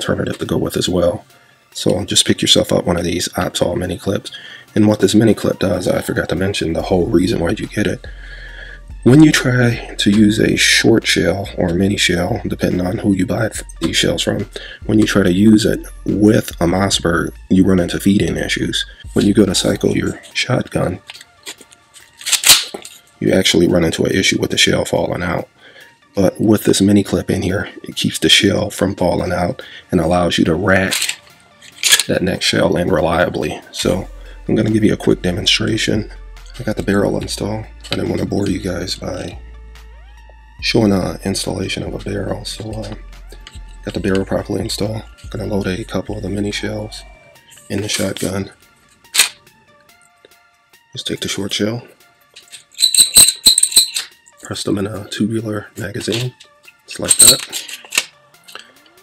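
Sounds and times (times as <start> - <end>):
quiet background music: 0.0 - 59.0
sharp metallic shotgun click: 49.1 - 49.4.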